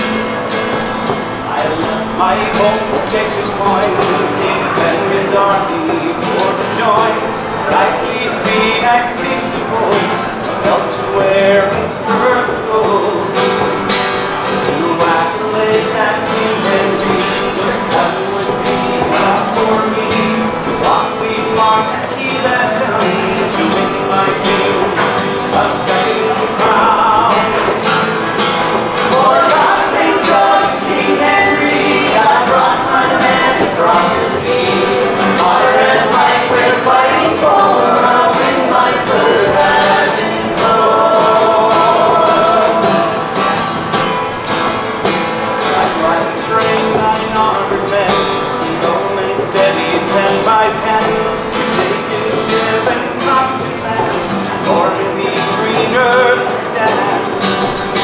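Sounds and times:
acoustic guitar strumming: 0.0s - 58.0s.

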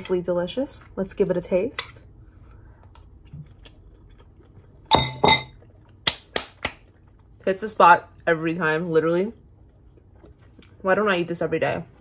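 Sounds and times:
metal utensil clinking ceramic bowl: 4.9s - 5.6s.

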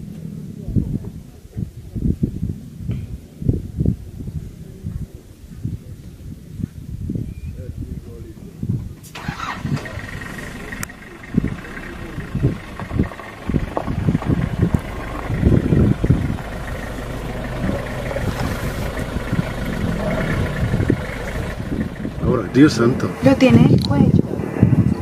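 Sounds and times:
vehicle engine running: 9.2s - 24.8s
steady low hum: 9.7s - 23.8s
low rumbles and knocks: 10.8s - 24.9s.

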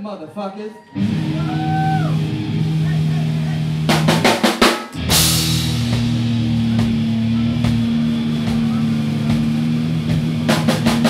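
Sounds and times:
distorted electric guitar drone: 1.0s - 11.0s.

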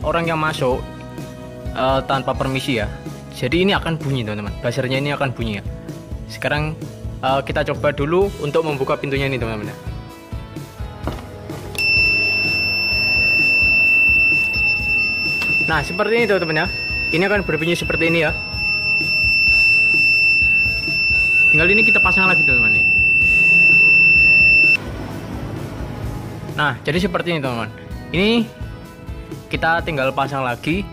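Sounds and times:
background music: 0.0s - 30.9s
high-pitched buzzer beep: 11.8s - 24.8s.

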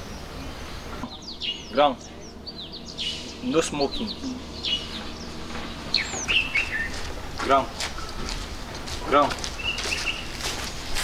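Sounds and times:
low background hum: 0.0s - 11.0s
small birds chirping: 0.0s - 11.0s.

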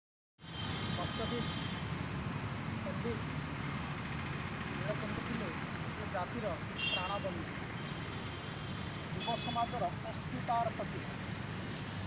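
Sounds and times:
road traffic rumble: 0.4s - 12.0s.

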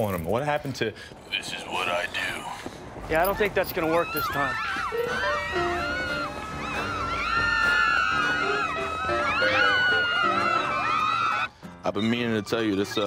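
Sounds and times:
women shrieking and squealing: 3.8s - 11.5s.

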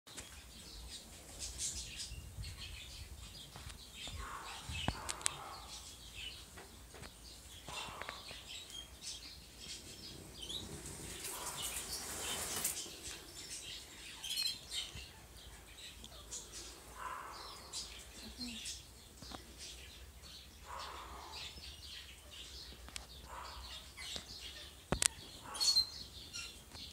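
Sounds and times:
small birds chirping: 0.1s - 26.9s.

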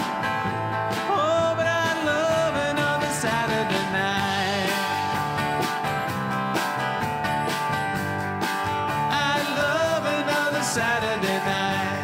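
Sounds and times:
drums: 0.0s - 12.0s
lead guitar with bent notes: 0.0s - 12.0s
strummed acoustic guitar: 0.0s - 12.0s.

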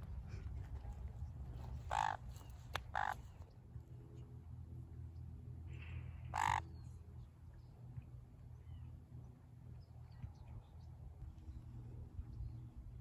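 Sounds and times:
parrot screeching: 1.9s - 2.2s, 3.0s - 3.2s, 6.4s - 6.6s.

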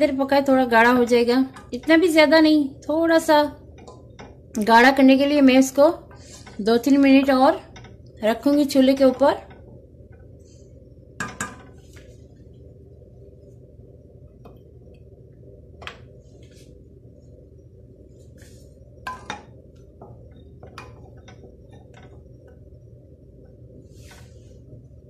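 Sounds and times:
steady low hum: 0.0s - 25.0s
wooden spoon knocking on pot: 11.2s - 11.7s.

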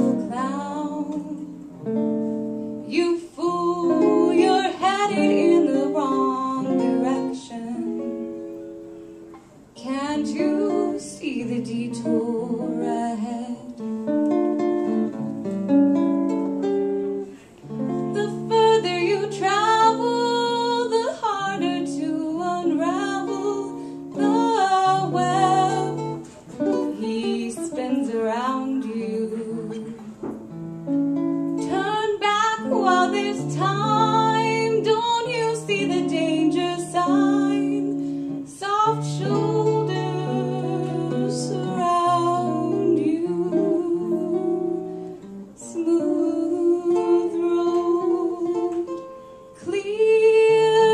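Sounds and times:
woman singing a jazz ballad: 0.0s - 2.1s, 2.7s - 8.6s, 9.8s - 15.1s, 16.5s - 30.2s, 31.5s - 50.9s
guitar playing chords: 0.0s - 49.6s.

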